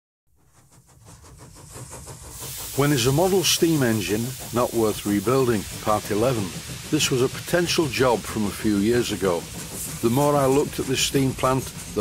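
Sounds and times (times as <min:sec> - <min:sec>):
steam engine chuffing: 0:00.3 - 0:12.0.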